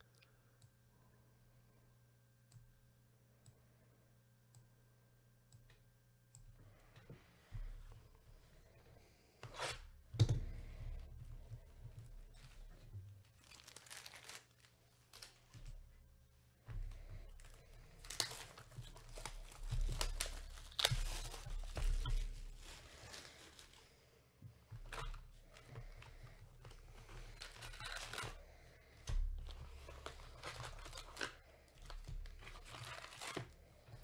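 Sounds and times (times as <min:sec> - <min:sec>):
foil card packs rustling: 0:09.4 - 0:15.8, 0:16.8 - 0:24.0, 0:24.8 - 0:34.0
plastic wrap tearing and crinkling: 0:12.2 - 0:15.7, 0:16.9 - 0:23.9, 0:24.9 - 0:28.4, 0:29.2 - 0:34.0.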